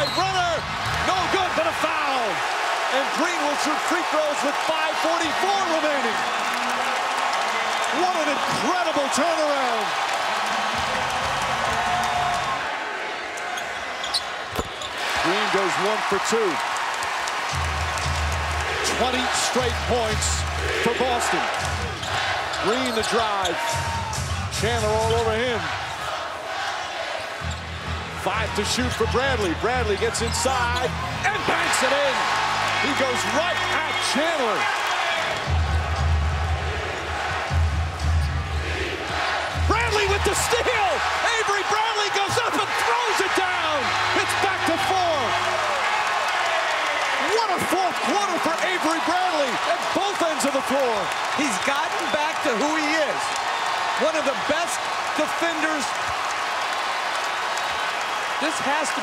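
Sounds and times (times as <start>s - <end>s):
arena crowd cheering: 0.0s - 59.0s.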